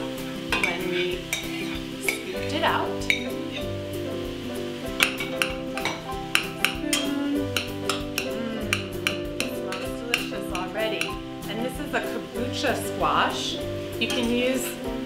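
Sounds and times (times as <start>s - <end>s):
background music: 0.0s - 15.0s
spoon scraping a saucepan: 0.1s - 3.8s, 5.0s - 11.2s.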